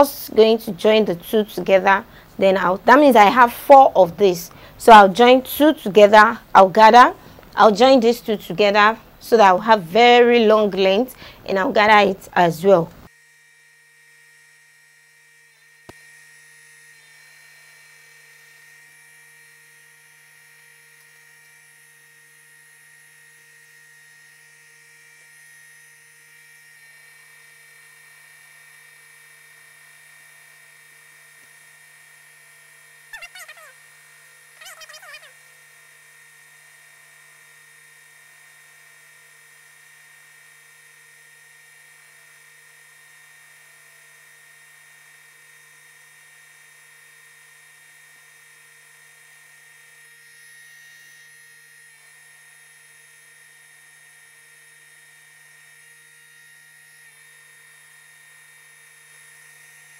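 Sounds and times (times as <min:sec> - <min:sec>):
sewing machine motor humming: 0:00.0 - 0:13.1.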